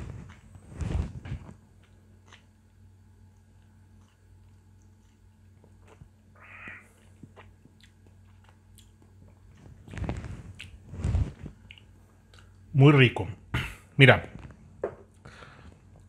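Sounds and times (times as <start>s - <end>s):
breathy sounds: 15.2s - 15.9s.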